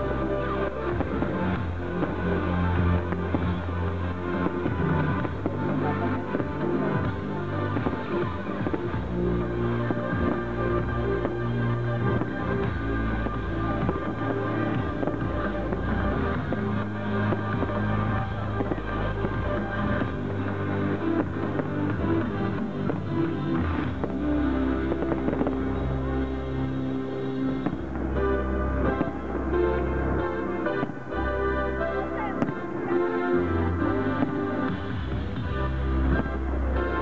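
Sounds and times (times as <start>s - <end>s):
firework bursts: 0.0s - 37.0s
loud music: 0.0s - 37.0s.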